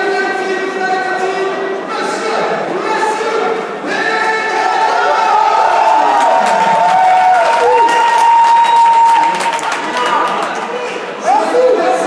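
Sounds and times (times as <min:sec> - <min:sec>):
crowd chanting and cheering: 0:01.7 - 0:12.0.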